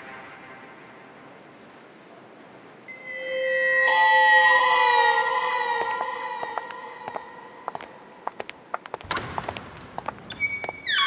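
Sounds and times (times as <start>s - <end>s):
sustained music tones: 2.9s - 8.2s
high shimmering layer: 2.9s - 8.4s.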